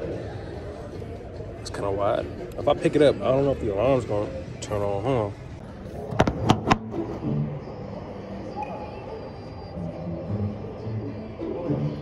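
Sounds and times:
store background noise: 0.0 - 12.0.

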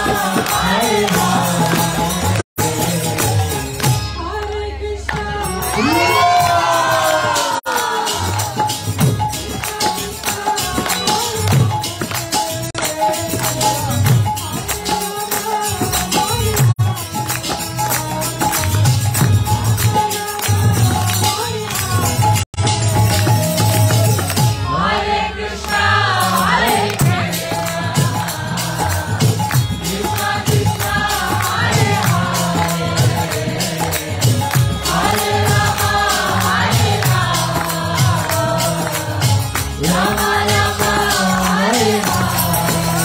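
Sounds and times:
devotional chanting: 0.0 - 43.0
harmonium notes: 0.0 - 43.0
voices whooping and cheering: 5.7 - 8.2.

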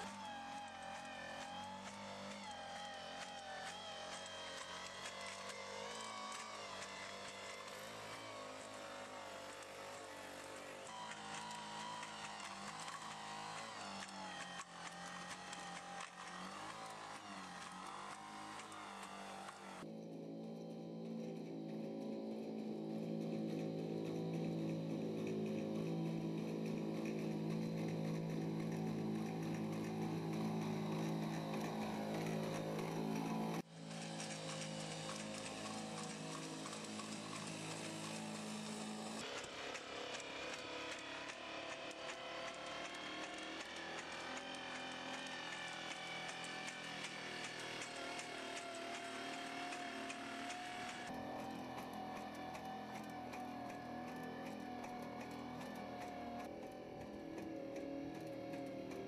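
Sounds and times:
robot droning hum: 0.0 - 59.0.

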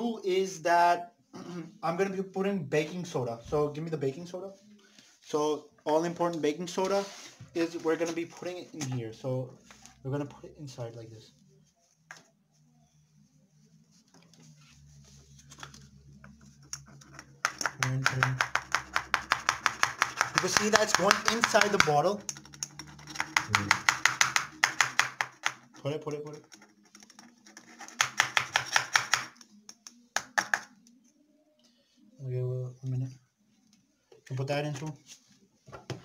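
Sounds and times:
powder tapping and rustling: 15.4 - 31.0.

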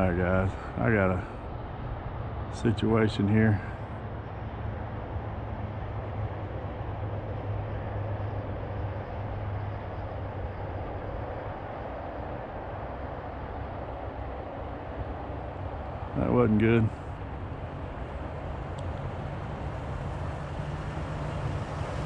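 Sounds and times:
low engine hum: 0.0 - 22.0
road or wind rumble: 0.0 - 22.0.

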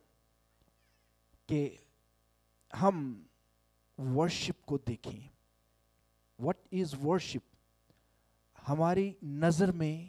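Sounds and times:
man speaking into a microphone: 1.5 - 1.9, 2.7 - 3.3, 4.0 - 5.4, 6.4 - 7.5, 8.6 - 10.0.

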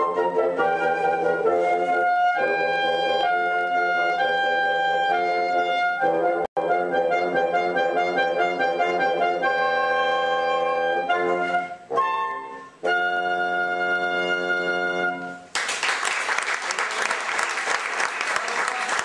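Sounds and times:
woodwind quartet playing: 0.0 - 15.5.

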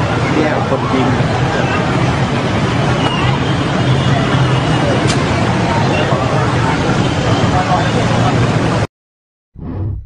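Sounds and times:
crowd chatter: 0.0 - 8.9.

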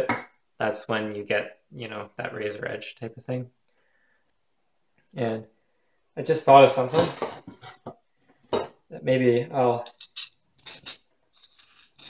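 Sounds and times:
file scraping knife blade: 9.9 - 12.0.

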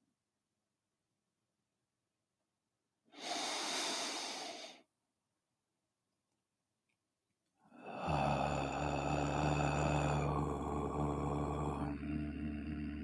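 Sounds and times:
man chanting om: 7.8 - 13.0.

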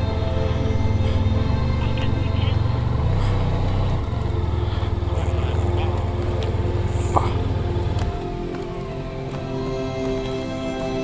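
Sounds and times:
background music: 0.0 - 11.0
motorcycle engine rumble: 0.0 - 11.0.

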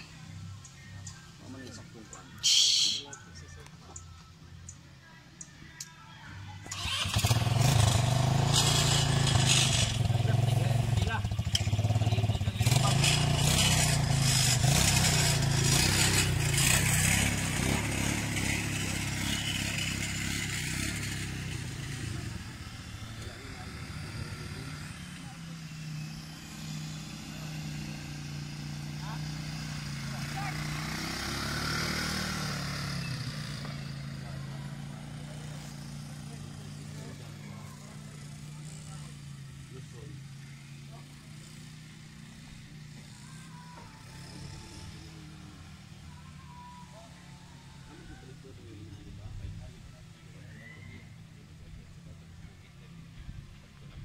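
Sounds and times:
quad bike engine running: 0.0 - 54.0.

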